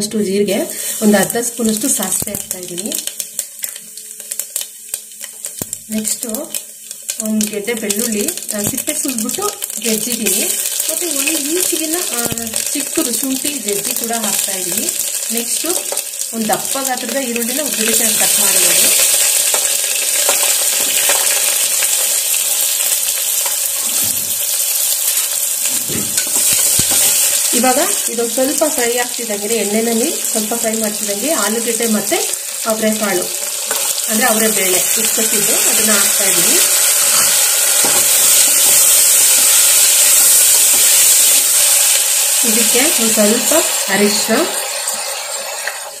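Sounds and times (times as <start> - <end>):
seeds sizzling in hot oil: 0.0 - 46.0
seeds crackling and popping: 1.0 - 45.0.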